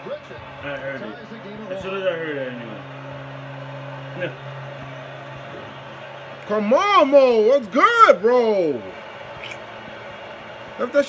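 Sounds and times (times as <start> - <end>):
steady low hum: 0.1 - 10.8.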